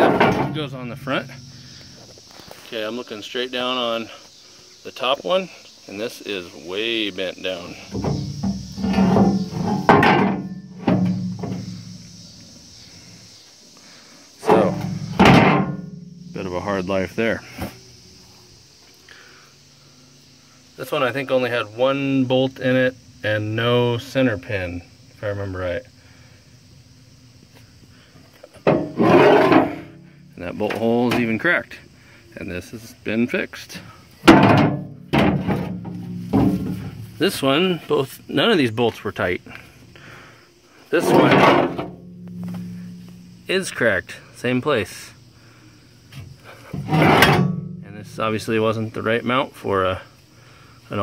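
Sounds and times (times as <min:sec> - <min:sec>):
steel bracket clanking: 0:00.0 - 0:01.8, 0:07.8 - 0:12.0, 0:14.4 - 0:16.5, 0:28.6 - 0:30.0, 0:34.2 - 0:37.2, 0:41.0 - 0:43.4, 0:46.6 - 0:48.3
metal ringing: 0:41.0 - 0:43.5, 0:46.8 - 0:48.2.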